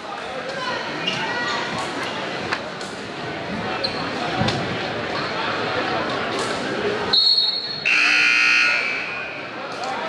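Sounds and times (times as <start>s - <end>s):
scoreboard buzzer: 7.9s - 9.1s.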